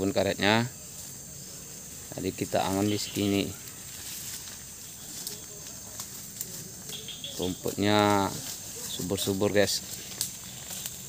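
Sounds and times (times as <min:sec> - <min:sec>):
insects droning: 0:00.0 - 0:11.0
faint ticks and rustles: 0:00.8 - 0:11.0.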